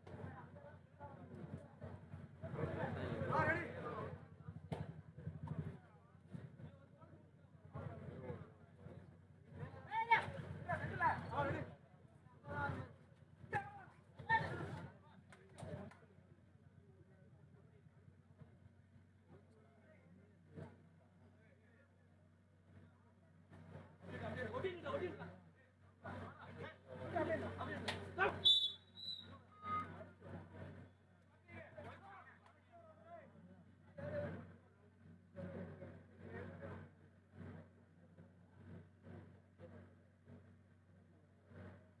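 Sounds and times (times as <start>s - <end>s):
men talking and calling: 1.8s - 5.0s, 24.0s - 34.6s
whistle blasts: 28.4s - 30.0s.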